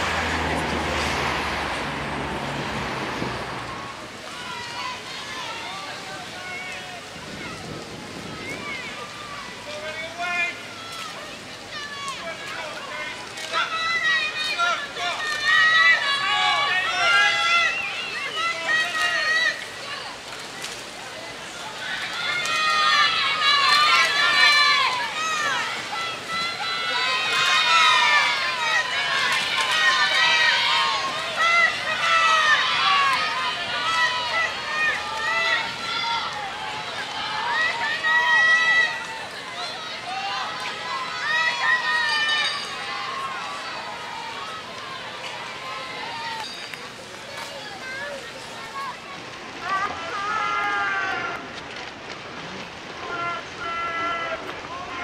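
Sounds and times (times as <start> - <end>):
people shouting encouragement: 3.6 - 20.3, 21.2 - 51.5, 53.0 - 55.0.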